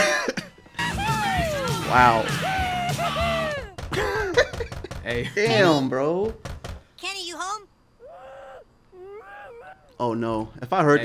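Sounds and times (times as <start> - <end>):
people talking: 1.4 - 3.2, 5.0 - 6.3.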